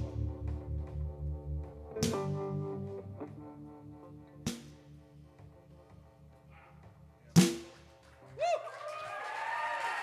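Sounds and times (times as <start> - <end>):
applause: 8.0 - 10.0
person whooping: 8.4 - 10.0.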